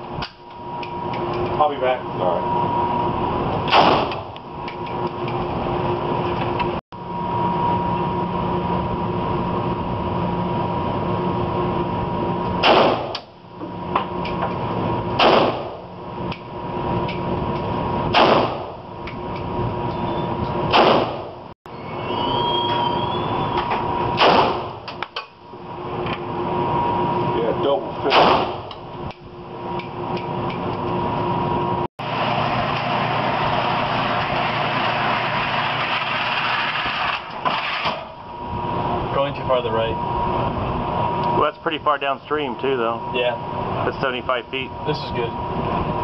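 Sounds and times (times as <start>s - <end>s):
steady hum: 0.0s - 46.0s
rifle shots echoing indoors: 12.6s - 13.2s, 15.2s - 15.7s, 18.1s - 18.7s, 20.7s - 21.2s.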